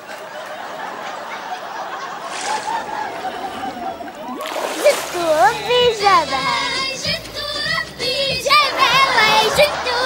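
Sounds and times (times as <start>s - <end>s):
water splash: 2.1s - 6.3s
person singing: 4.9s - 10.0s.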